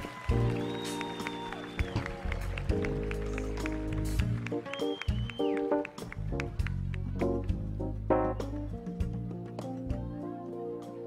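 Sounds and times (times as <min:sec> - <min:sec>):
bass guitar: 0:01.8 - 0:11.0
sustained keyboard chords: 0:01.8 - 0:11.0.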